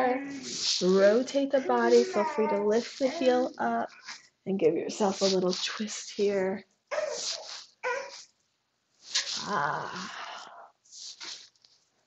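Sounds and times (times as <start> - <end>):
baby squealing: 6.9 - 8.2.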